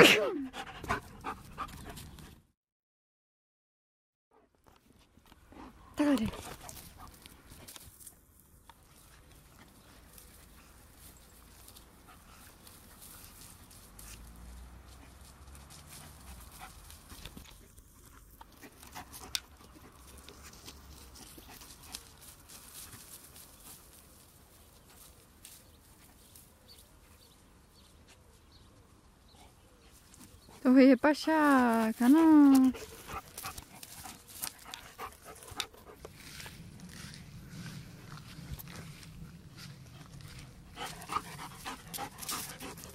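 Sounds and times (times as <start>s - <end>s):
low rumble: 36.1s - 41.0s.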